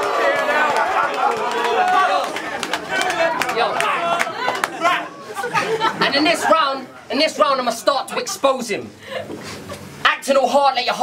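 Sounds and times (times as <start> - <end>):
crowd talking: 0.0 - 11.0.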